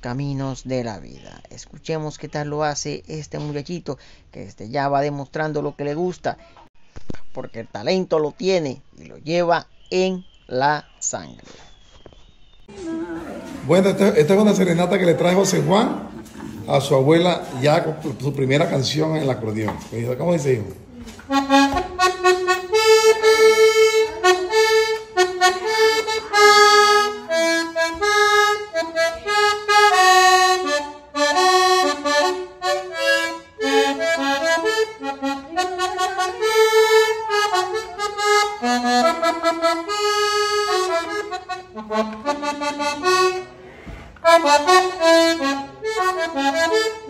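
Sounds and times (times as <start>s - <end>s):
button accordion melody: 12.7s - 47.0s.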